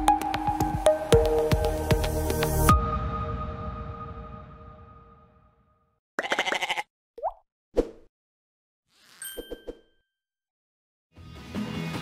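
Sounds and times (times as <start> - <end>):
background music: 0.0 - 5.3, 11.2 - 12.0.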